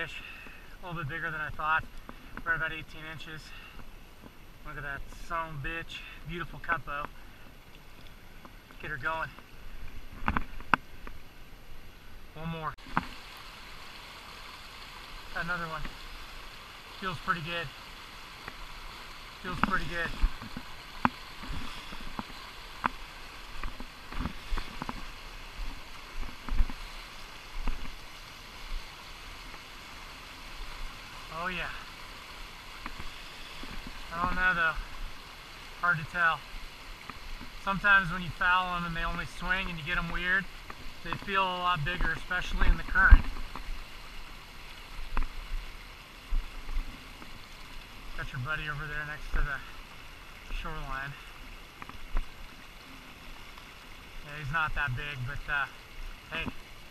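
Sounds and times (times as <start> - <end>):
river rushing: 0.0 - 56.9.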